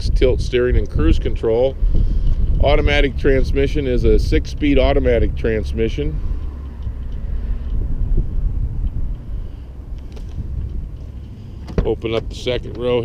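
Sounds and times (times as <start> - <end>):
low outdoor rumble: 0.0 - 13.0.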